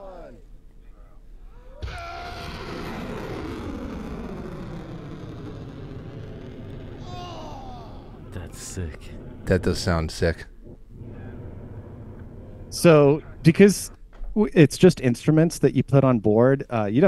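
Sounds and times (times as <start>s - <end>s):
rocket motor rumble: 1.8s - 14.0s.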